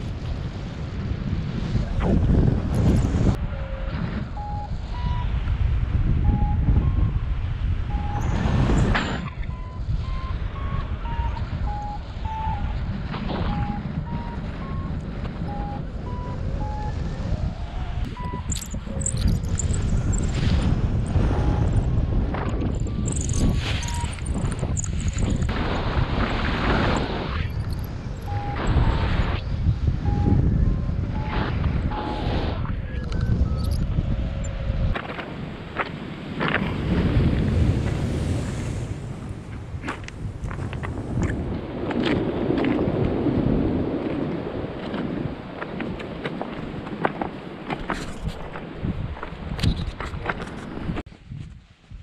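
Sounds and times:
wind rushing over microphone: 0.0 - 52.0
short electronic beeps: 4.4 - 5.4, 6.2 - 7.2, 7.9 - 8.4, 9.0 - 12.8, 13.4 - 17.1, 18.1 - 21.9, 22.6 - 25.5, 26.9 - 34.5.

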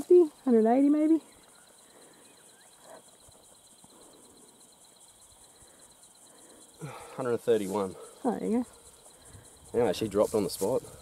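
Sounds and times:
background hiss: 0.0 - 11.0
high-pitched insect trill: 0.0 - 11.0.

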